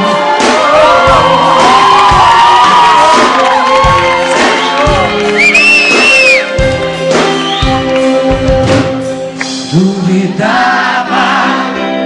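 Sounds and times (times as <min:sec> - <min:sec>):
audience cheering and singing along: 0:00.0 - 0:12.0
live band playing pop song: 0:00.0 - 0:12.0.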